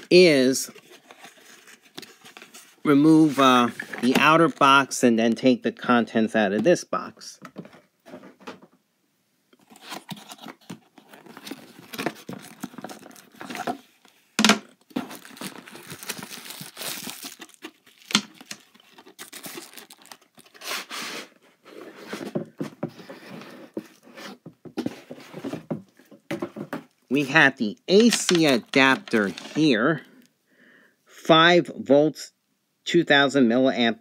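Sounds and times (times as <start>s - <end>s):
packing material crinkling: 9.6s - 21.0s
cardboard rubbing and scraping: 20.4s - 25.7s.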